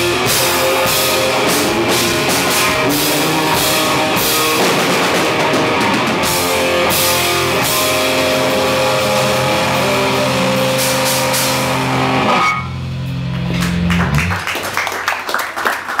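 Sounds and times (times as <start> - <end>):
live rock band playing: 0.0 - 14.3.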